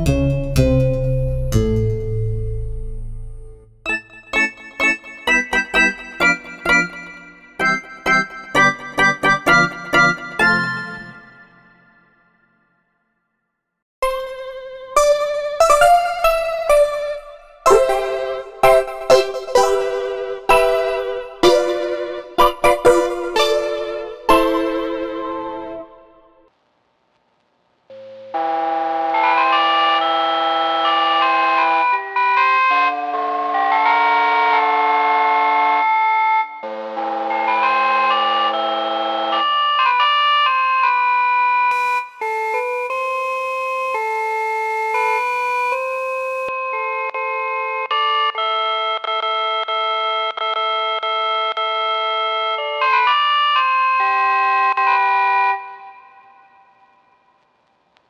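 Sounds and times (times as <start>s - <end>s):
bell-like keys playing chords: 0.0s - 12.0s, 14.0s - 26.2s
vinyl noise hiss: 24.9s - 28.4s, 41.8s - 46.5s, 55.7s - 58.0s.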